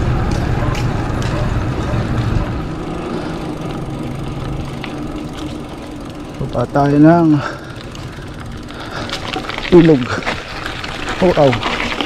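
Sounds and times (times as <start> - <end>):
bike tyres rolling on concrete: 0.0 - 12.0.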